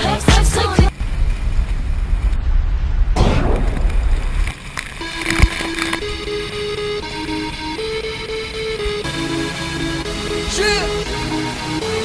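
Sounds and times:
music: 0:00.0 - 0:00.9, 0:05.0 - 0:12.0
wind buffeting microphone: 0:00.9 - 0:09.0.

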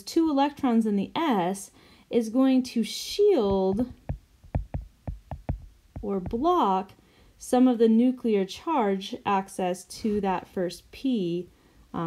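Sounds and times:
stylus tapping on glass screen: 0:03.4 - 0:06.5.

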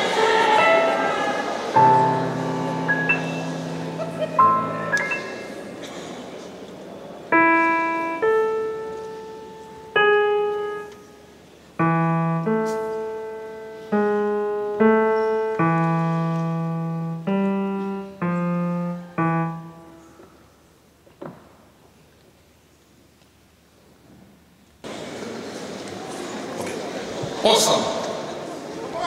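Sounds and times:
slow piano accompaniment: 0:00.0 - 0:21.0.

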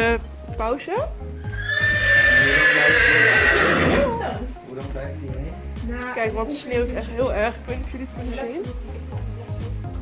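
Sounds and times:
horse neighing: 0:01.4 - 0:04.4.

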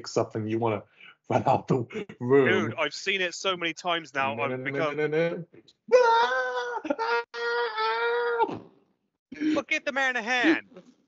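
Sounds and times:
man wailing no: 0:05.9 - 0:08.6.

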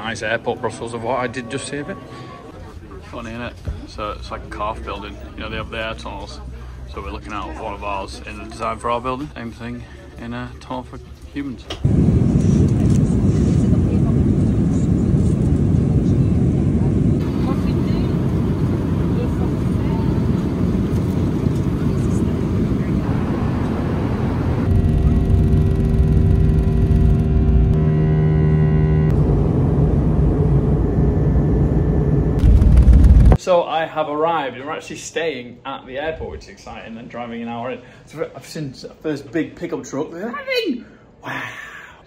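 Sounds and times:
jet engines and airflow rushing: 0:11.8 - 0:33.4
multi-tone engine whine: 0:14.8 - 0:33.4.

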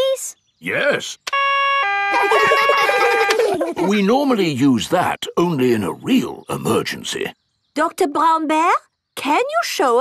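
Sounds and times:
voices: 0:00.0 - 0:01.4, 0:02.1 - 0:10.0
two-tone siren: 0:01.3 - 0:03.6.

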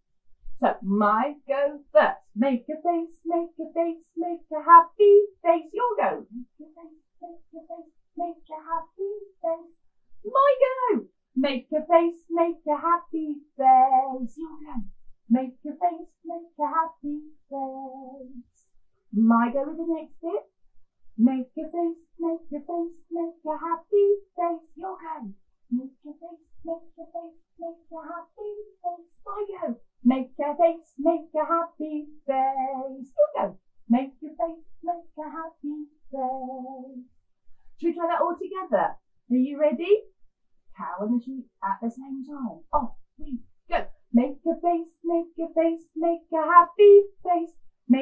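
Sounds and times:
woman singing unaccompanied: 0:00.6 - 0:09.7, 0:10.3 - 0:18.6, 0:19.2 - 0:20.4, 0:21.2 - 0:37.1, 0:37.8 - 0:40.0, 0:40.8 - 0:43.4, 0:44.1 - 0:48.0.

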